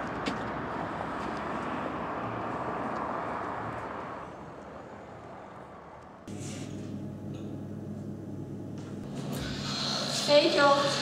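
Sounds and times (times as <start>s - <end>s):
passing vehicle hiss and rumble: 0.0s - 6.8s.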